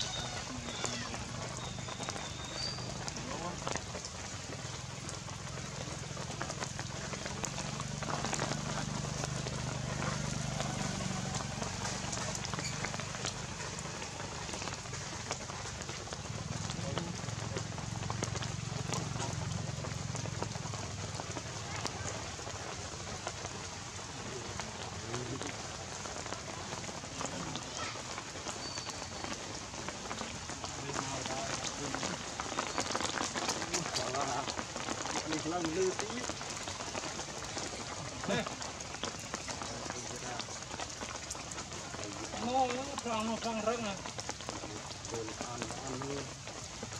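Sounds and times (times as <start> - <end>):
rain falling on leaves: 0.0 - 46.9.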